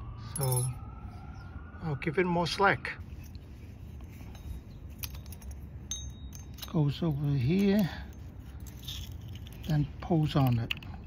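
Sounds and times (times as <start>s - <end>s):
short ringing metal clink: 0.4s - 0.8s, 4.3s - 9.6s.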